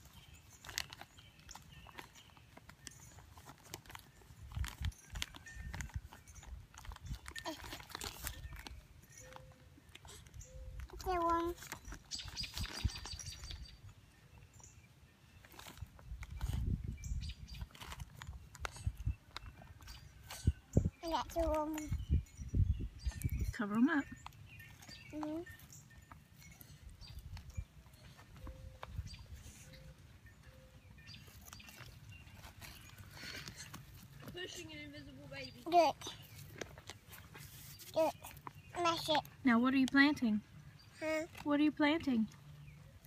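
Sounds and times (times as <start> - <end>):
paper packet crinkling: 0.0 - 8.8.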